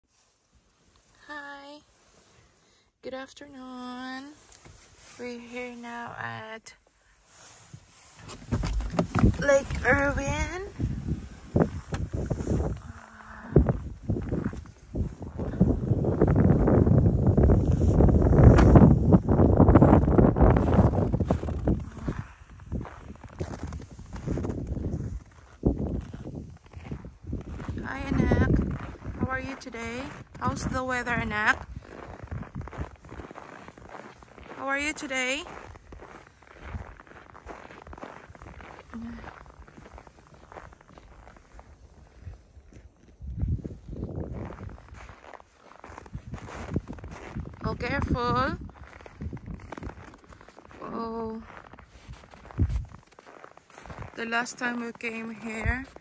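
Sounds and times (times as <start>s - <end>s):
footsteps in snow: 3.6s - 56.0s
wind buffeting microphone: 8.2s - 34.6s, 35.5s - 50.8s, 51.4s - 54.6s.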